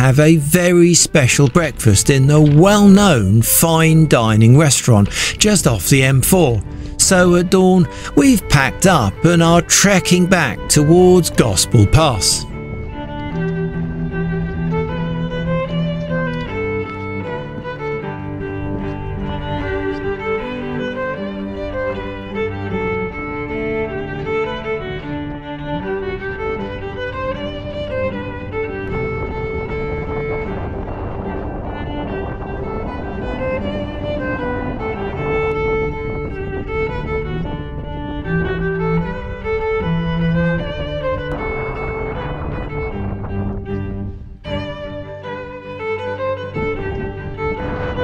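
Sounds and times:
violin led string music: 0.0 - 48.0.

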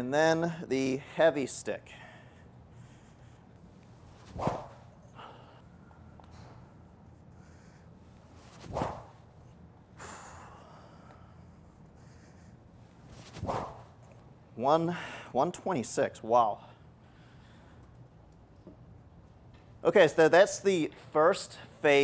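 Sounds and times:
training stick swishing through air: 3.9 - 5.2, 8.2 - 9.5, 13.0 - 14.2.

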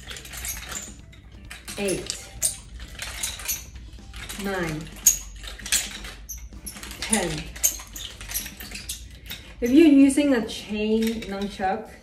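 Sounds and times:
chain clinking and squeaking: 0.0 - 12.0.

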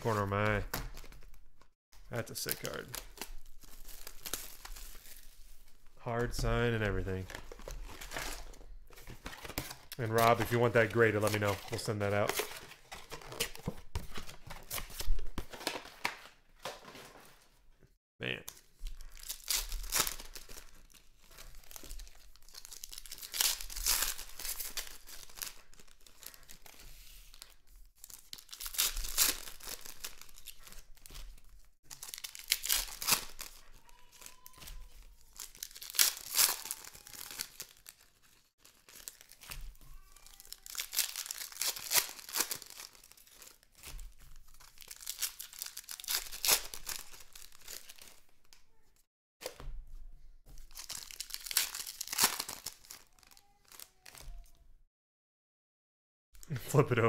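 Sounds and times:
wrappers crinkling: 0.0 - 5.8, 18.5 - 48.5, 50.6 - 54.5
card packs being torn open: 2.2 - 5.3, 18.5 - 48.3, 50.6 - 54.5.

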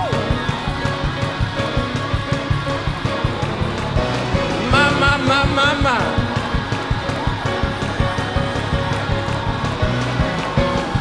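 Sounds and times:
bass line: 0.0 - 11.0
fast drum beat: 0.0 - 11.0
gospel band music: 0.0 - 11.0.

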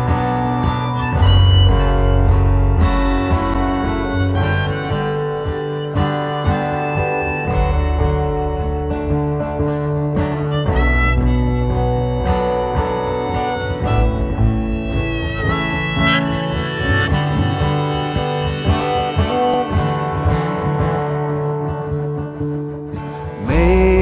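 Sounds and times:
low backing: 0.0 - 20.7
harmonica lead line: 0.0 - 24.0
strummed acoustic guitar: 0.0 - 24.0.

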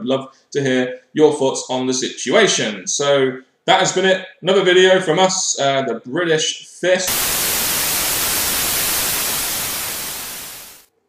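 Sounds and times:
television static hiss: 7.1 - 10.9.

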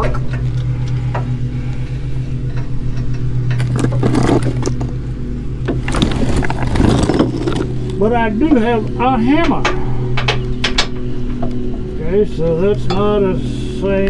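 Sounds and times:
low machine hum: 0.0 - 14.0
hand tools scraping and clinking: 3.5 - 5.0, 5.8 - 8.0.

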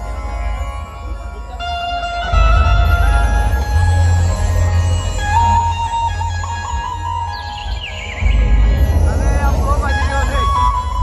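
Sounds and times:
voices over music: 8.4 - 11.0.

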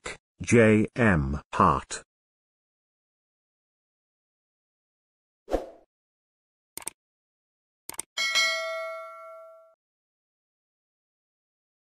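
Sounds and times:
bright bell ding: 8.2 - 9.8.

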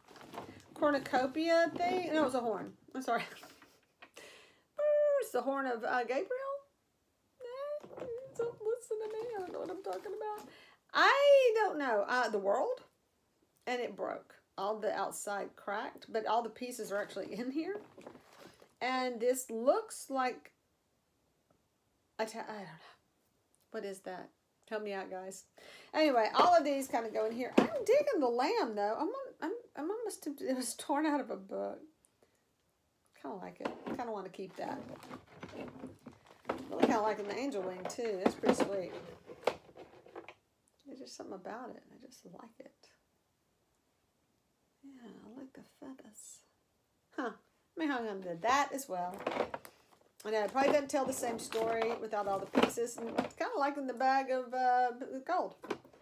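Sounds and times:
woman speaking: 0.7 - 3.6, 4.8 - 6.7, 7.4 - 12.9, 13.7 - 17.8, 18.8 - 20.5, 23.7 - 31.9, 33.2 - 35.8, 36.5 - 39.2, 40.8 - 43.0, 44.8 - 46.5, 47.2 - 49.3, 50.2 - 55.6.

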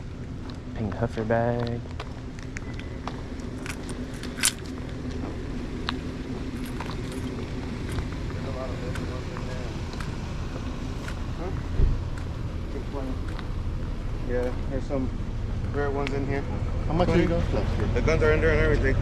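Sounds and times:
distant voices: 0.0 - 19.0
low street rumble: 0.0 - 19.0
low thump: 11.7 - 12.0.

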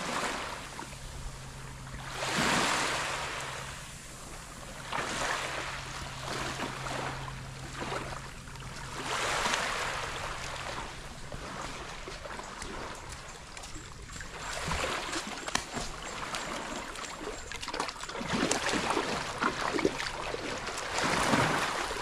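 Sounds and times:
small waves washing onto sand: 0.0 - 22.0
steady low hum: 0.0 - 22.0.

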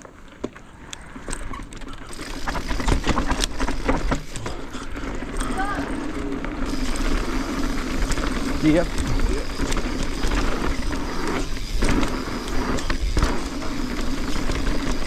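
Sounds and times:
bike clicks and rattles: 0.0 - 15.0
bike tyres rolling over stones: 0.0 - 15.0.

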